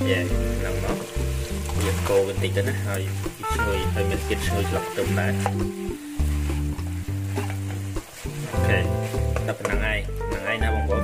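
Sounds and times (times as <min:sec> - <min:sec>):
background music with bass notes: 0:00.0 - 0:11.0
food sizzling in a pan: 0:00.0 - 0:11.0.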